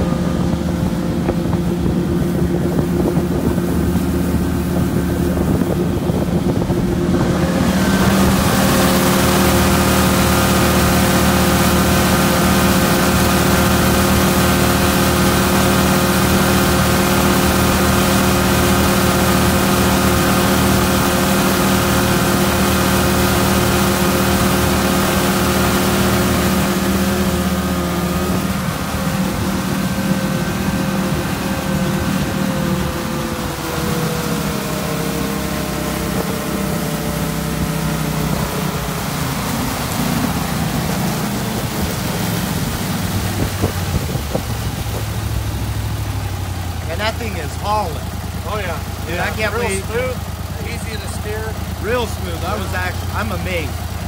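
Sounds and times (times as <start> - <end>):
boat motor running: 0.0 - 54.0
rushing water hiss: 34.8 - 53.6.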